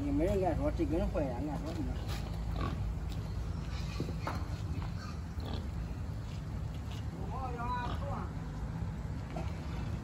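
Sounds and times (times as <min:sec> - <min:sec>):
pigs calling: 0:01.9 - 0:06.4, 0:07.5 - 0:08.3.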